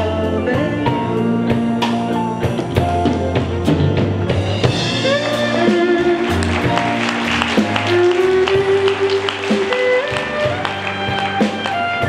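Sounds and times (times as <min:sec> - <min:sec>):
guitars: 0:00.0 - 0:12.0
steady drum beat: 0:00.0 - 0:12.0.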